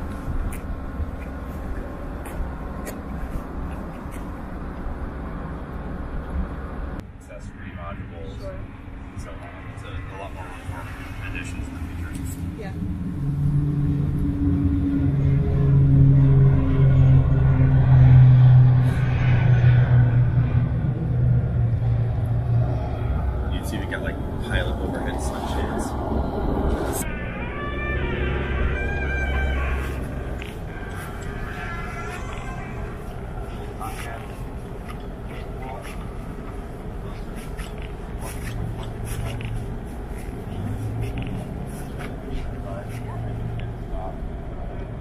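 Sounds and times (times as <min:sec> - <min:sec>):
indistinct voices: 0:07.4 - 0:45.0
helicopter machinery humming: 0:28.0 - 0:43.4.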